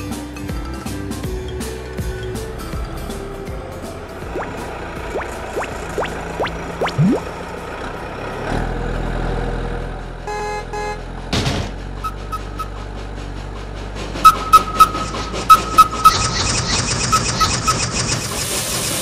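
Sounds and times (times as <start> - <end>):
engine hum: 0.0 - 19.0
horn toots: 12.0 - 12.9
high beep: 14.3 - 16.3.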